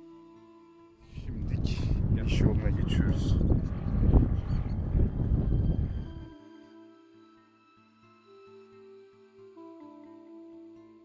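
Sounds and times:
wind buffeting microphone: 1.0s - 6.3s
man's voice: 1.1s - 3.4s.

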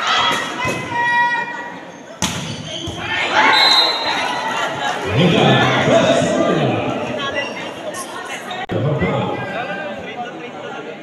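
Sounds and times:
people shouting and cheering: 0.0s - 1.9s, 2.8s - 7.8s.

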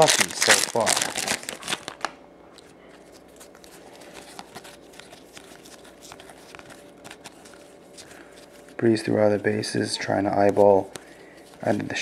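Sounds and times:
cards clicking and rustling: 0.0s - 9.0s, 10.3s - 12.0s
faint steady hum: 0.0s - 12.0s.

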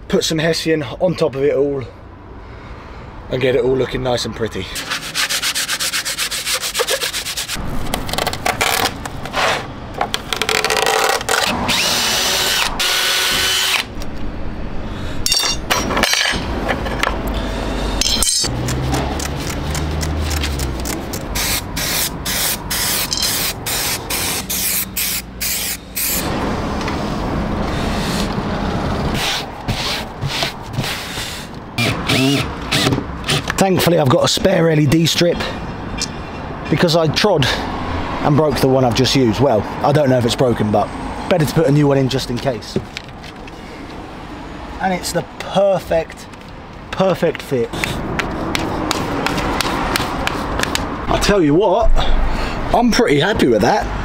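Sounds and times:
hand sanding with sanding block: 4.8s - 7.6s, 29.2s - 31.5s, 47.7s - 50.9s
cordless drill whirring: 10.5s - 13.9s, 31.8s - 33.5s
spray adhesive hiss: 21.4s - 26.2s.

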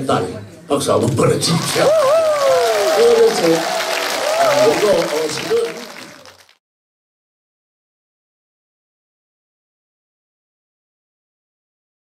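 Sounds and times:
audience applauding: 1.4s - 6.6s.

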